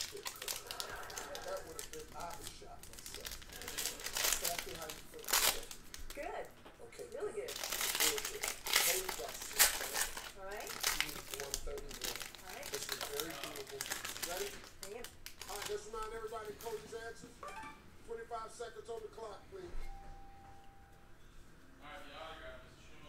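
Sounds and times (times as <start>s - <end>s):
foil wrapper crinkling: 0.0s - 6.5s, 7.4s - 17.1s.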